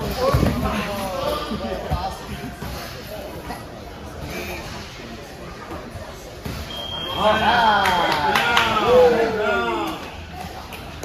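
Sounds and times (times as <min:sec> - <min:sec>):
faint voices: 0:00.0 - 0:11.0
low gym noise: 0:00.0 - 0:11.0.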